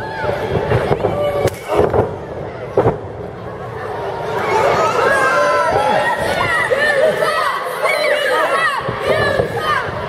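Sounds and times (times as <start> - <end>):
crowd voices: 0.0 - 10.0.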